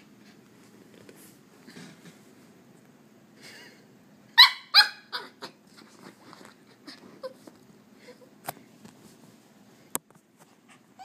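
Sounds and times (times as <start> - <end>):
puppy yapping: 4.4 - 5.6.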